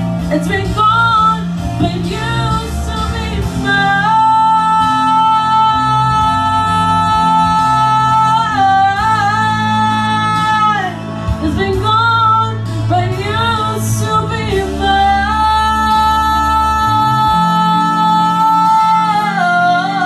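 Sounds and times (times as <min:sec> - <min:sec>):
instrumental backing: 0:00.0 - 0:20.0
woman singing a ballad: 0:00.1 - 0:20.0.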